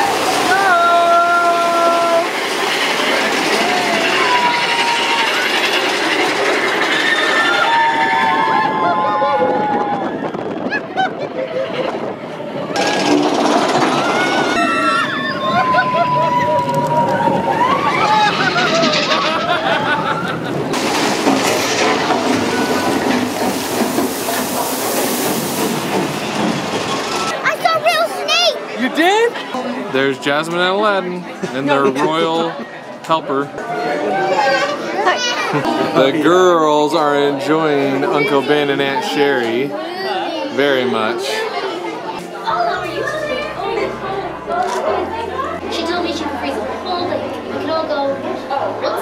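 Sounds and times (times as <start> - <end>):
roller coaster rattling on track: 0.0 - 49.0
rising and falling tones: 12.8 - 27.4.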